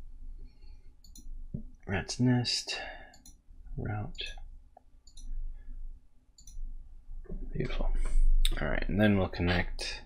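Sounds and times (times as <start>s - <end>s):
low steady hum: 0.0s - 10.0s
computer mouse clicking: 1.0s - 1.4s, 4.1s - 5.4s, 6.4s - 6.7s.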